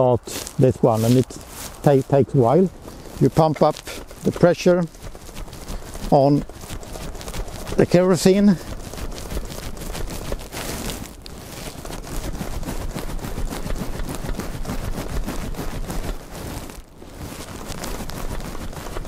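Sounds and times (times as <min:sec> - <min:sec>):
dense irregular crackling: 0:00.0 - 0:19.0
hand pump strokes: 0:00.0 - 0:19.0.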